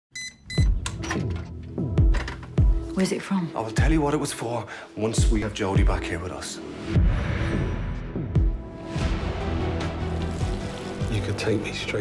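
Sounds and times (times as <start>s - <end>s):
keypad beeps: 0.1s - 0.8s
dramatic trailer music: 0.5s - 4.4s, 5.1s - 12.0s.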